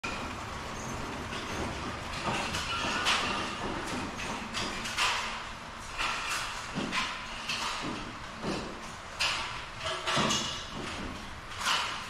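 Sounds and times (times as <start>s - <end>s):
model train rolling on track: 0.0s - 4.3s.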